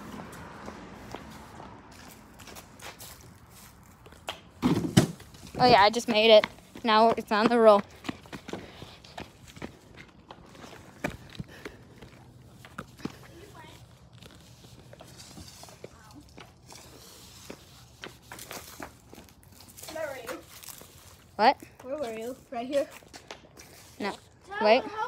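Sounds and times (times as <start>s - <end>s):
footsteps on concrete: 0.0s - 25.0s.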